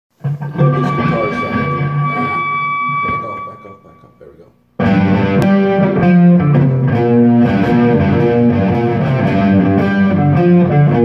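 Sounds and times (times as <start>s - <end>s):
cigar box guitar picked notes: 0.2s - 11.0s.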